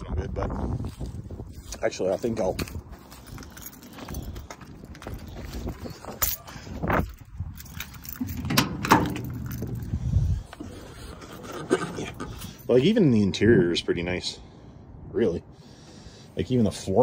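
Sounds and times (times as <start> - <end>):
truck door latch clicks and knocks: 8.2 - 9.8.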